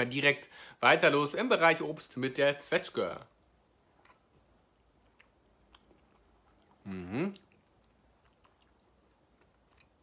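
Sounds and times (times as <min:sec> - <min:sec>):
person humming: 0:06.8 - 0:07.4.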